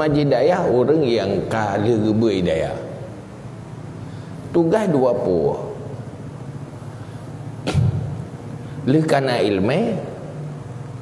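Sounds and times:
low microphone hum: 0.0 - 11.0.

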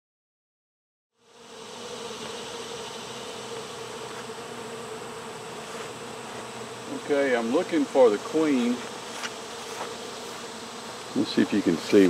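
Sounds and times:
honeybees buzzing: 1.2 - 12.0.

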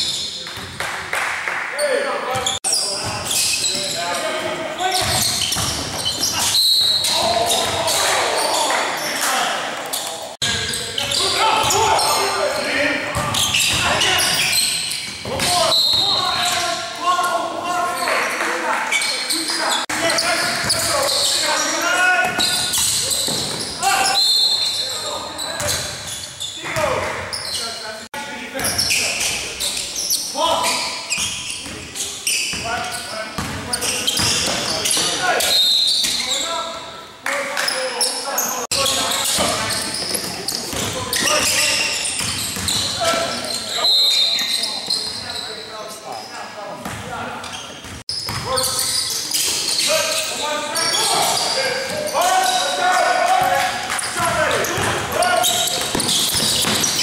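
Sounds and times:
sneaker squeaks: 0.0 - 0.7, 1.8 - 18.2, 18.8 - 28.0, 28.6 - 37.0, 37.6 - 57.0
players calling out: 1.8 - 37.0, 47.4 - 57.0.

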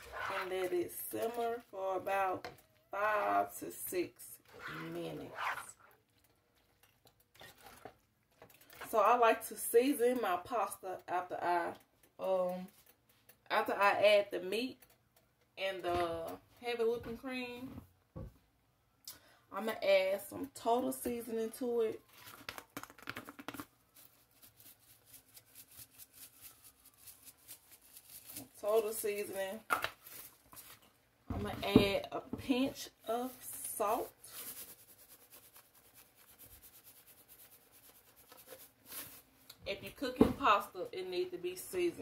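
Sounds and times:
spatula stirring pasta in skillet: 0.0 - 10.8, 20.5 - 29.4, 31.6 - 40.1.

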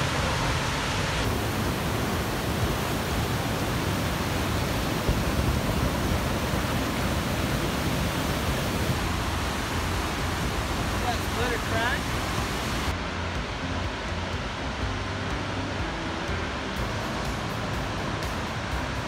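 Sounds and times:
waterfall roaring: 0.0 - 19.0.

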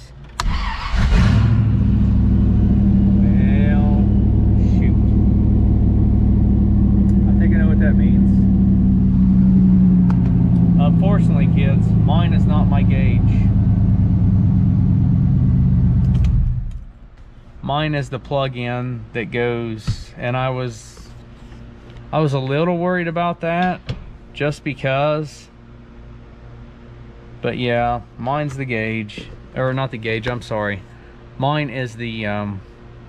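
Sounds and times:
car engine starting and idling: 0.2 - 17.2.

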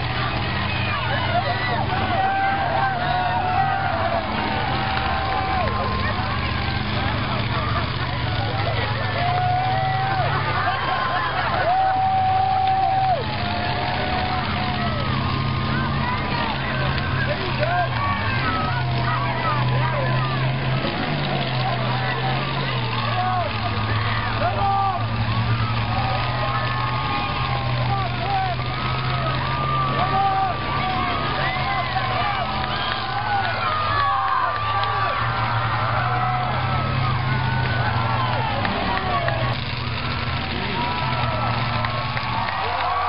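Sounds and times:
car engines droning: 0.0 - 43.0
crowd calling and shouting: 0.0 - 43.0.

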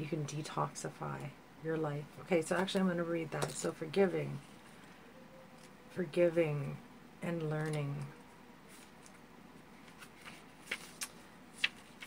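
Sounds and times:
cards handled by hand: 9.8 - 12.0.

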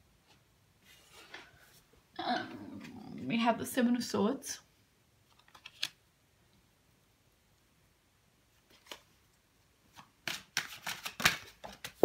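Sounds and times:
cards shuffling: 5.3 - 6.0, 8.6 - 9.2, 9.9 - 12.0
papery snaps and rustles: 5.3 - 6.0, 8.6 - 9.2, 9.9 - 12.0.

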